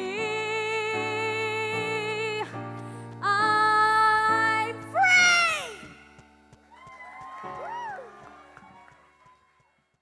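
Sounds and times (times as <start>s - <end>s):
faint whoops: 6.7s - 9.7s.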